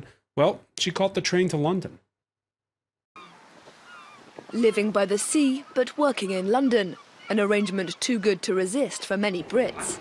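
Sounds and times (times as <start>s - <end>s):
seagull calls: 3.2s - 10.0s.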